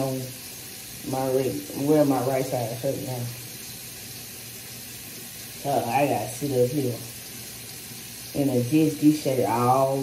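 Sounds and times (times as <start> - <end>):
person speaking: 1.1 - 3.4, 5.6 - 7.2, 8.4 - 10.0.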